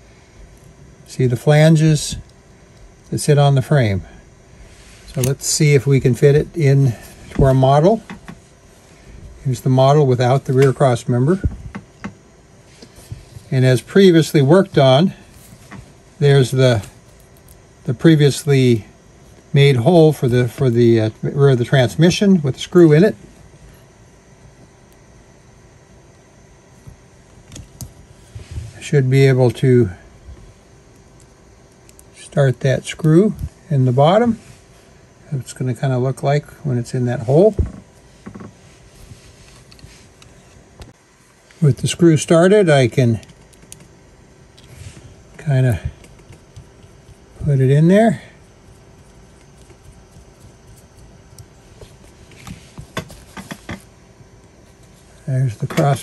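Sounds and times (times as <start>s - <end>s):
low background hum: 0.0s - 56.0s.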